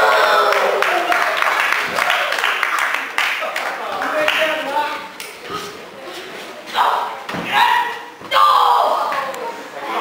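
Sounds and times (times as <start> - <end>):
voices shouting in echoing hall: 0.0 - 2.7, 6.7 - 10.0.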